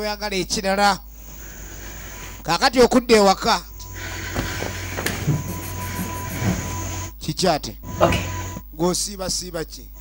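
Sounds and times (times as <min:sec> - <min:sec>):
room noise hiss and hum: 0:00.0 - 0:10.0.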